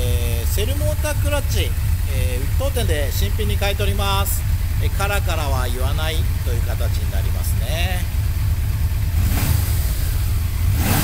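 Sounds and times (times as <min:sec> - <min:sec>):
motorcycle engine idling: 0:00.0 - 0:11.0.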